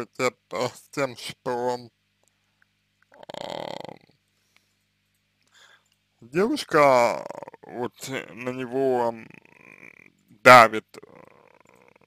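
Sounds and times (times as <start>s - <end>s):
man's creaky hesitation sound: 3.0s - 4.4s, 6.4s - 12.0s.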